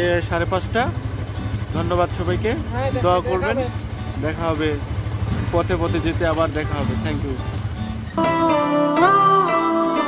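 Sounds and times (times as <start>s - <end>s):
motorcycle engine droning: 0.0s - 10.0s
man talking: 1.7s - 7.5s.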